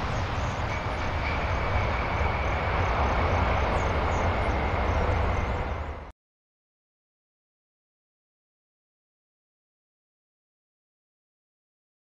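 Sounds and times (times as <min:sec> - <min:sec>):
jet engines rumbling: 0:00.0 - 0:06.1
thin steady whine: 0:00.0 - 0:06.1.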